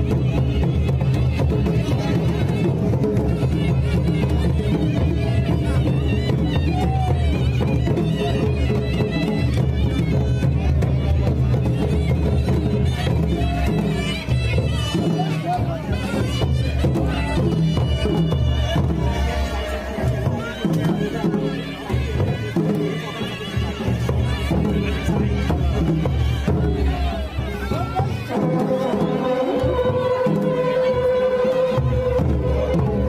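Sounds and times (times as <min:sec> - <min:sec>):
drums beaten with sticks: 0:00.0 - 0:33.0
reedy wind instrument melody: 0:00.0 - 0:33.0.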